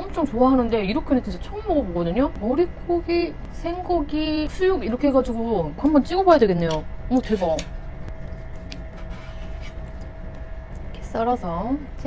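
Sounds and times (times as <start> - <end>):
low background rumble: 0.0 - 12.0
thin steady hum: 0.0 - 12.0.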